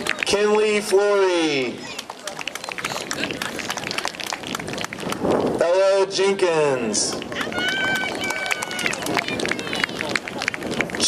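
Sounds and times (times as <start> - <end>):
crowd clapping: 0.0 - 6.2, 6.8 - 11.0.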